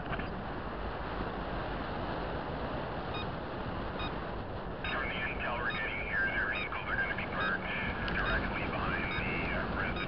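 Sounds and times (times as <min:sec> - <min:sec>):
car driving on road: 0:00.0 - 0:10.0.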